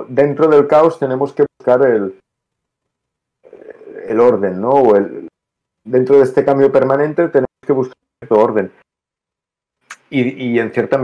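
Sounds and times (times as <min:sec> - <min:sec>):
man speaking over video call: 0:00.0 - 0:02.3, 0:03.4 - 0:08.9, 0:09.8 - 0:11.0.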